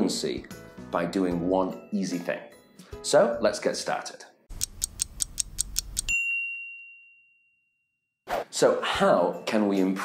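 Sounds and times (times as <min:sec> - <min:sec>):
high-pitched bell ding: 0:06.0 - 0:07.7.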